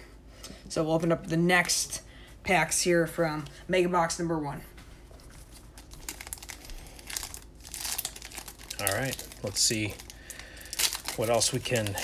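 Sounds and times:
foil wrappers crinkling: 0:05.2 - 0:12.0.

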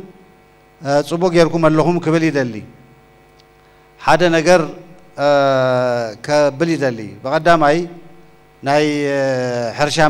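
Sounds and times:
man speaking into microphone: 0:00.8 - 0:02.8, 0:04.0 - 0:10.0.

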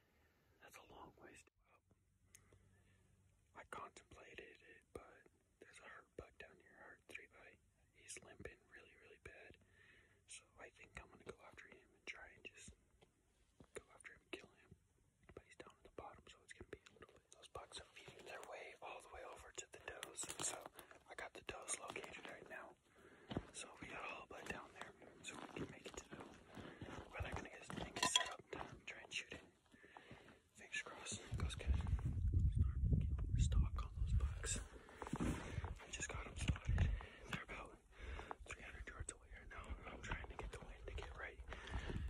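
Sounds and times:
man whispering: 0:00.6 - 0:01.8, 0:03.5 - 0:12.8, 0:13.6 - 0:22.8, 0:23.5 - 0:30.0, 0:30.6 - 0:42.0.

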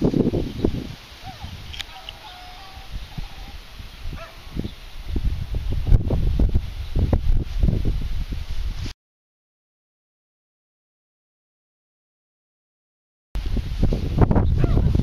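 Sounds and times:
wind buffeting microphone: 0:00.0 - 0:08.9, 0:13.4 - 0:15.0.

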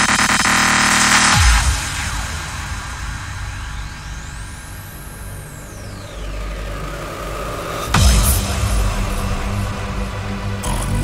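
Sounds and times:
rising synth sweep: 0:00.0 - 0:11.0
held bass: 0:08.0 - 0:11.0.

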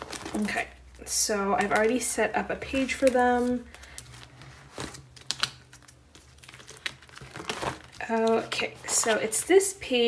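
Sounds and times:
plastic sleeves crinkling: 0:00.0 - 0:10.0.

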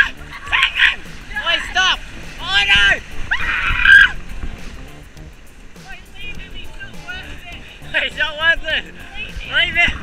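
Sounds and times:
high-pitched yelps: 0:03.3 - 0:04.2.

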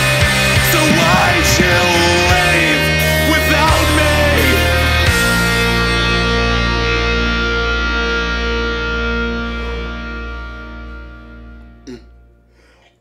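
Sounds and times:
distorted guitar and bass chord: 0:00.0 - 0:12.4
man humming short mm: 0:11.8 - 0:12.2.

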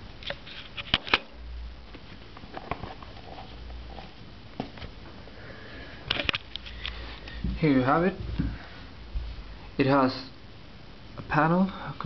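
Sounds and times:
low room hum: 0:00.0 - 0:12.0
camera handling clicks and rustle: 0:06.1 - 0:07.0.

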